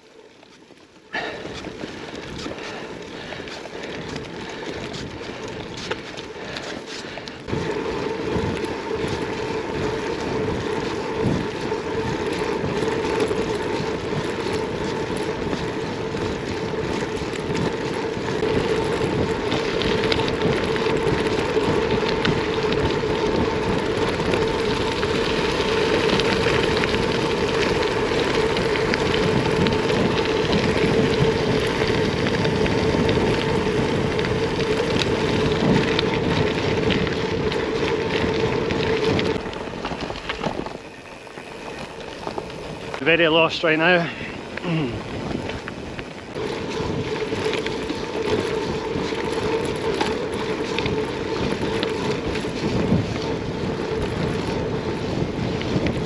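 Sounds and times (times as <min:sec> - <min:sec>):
bike tyres crunching on gravel: 0:00.0 - 0:56.0
wind on microphone: 0:07.5 - 0:56.0.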